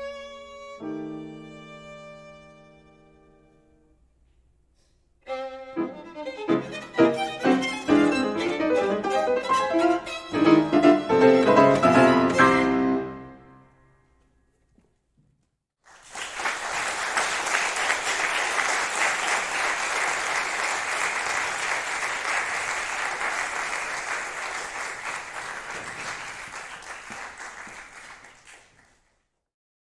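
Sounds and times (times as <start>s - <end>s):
audience applauding: 15.8s - 29.2s.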